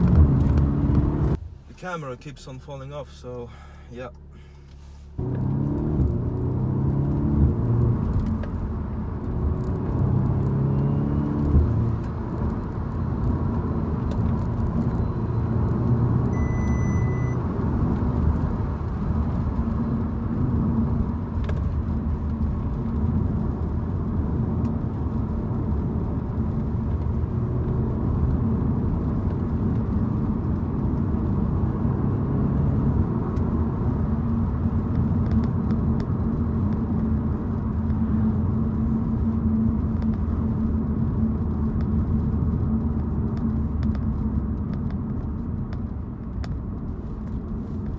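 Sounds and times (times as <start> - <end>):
car engine revving: 0.0 - 1.5, 5.2 - 45.3
road noise: 0.0 - 47.9
short high beep: 16.3 - 17.4.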